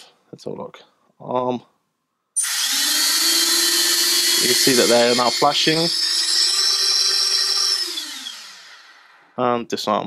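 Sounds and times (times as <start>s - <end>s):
drone motors whining: 2.4s - 9.3s.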